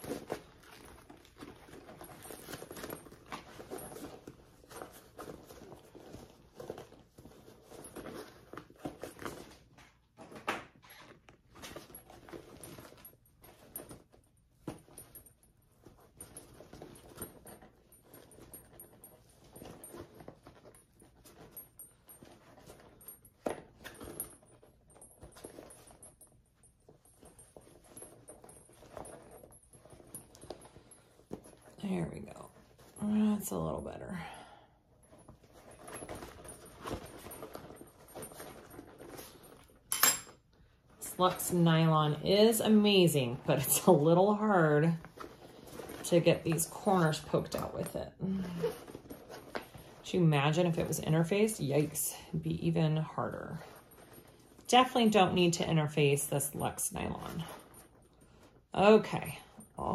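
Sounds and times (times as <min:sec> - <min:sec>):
nylon fabric rustling: 0:00.0 - 0:59.9.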